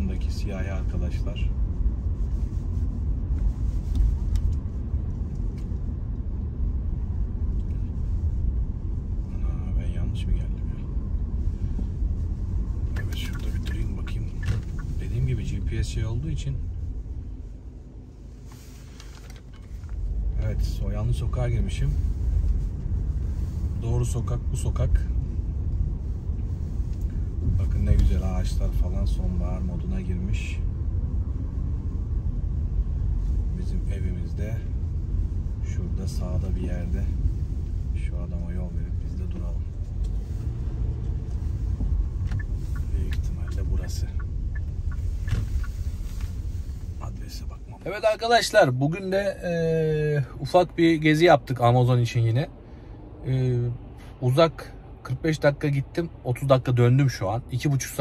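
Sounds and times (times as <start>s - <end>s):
car driving rumble: 0.0s - 58.0s.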